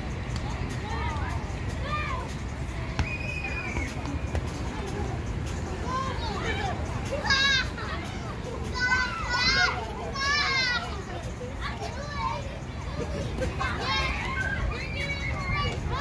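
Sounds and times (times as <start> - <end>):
children calling and shouting: 0.0 - 16.0.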